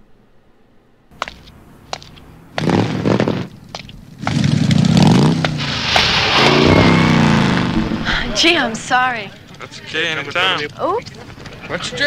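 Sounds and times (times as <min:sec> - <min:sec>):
motorcycle engines revving and passing: 0:01.6 - 0:09.2.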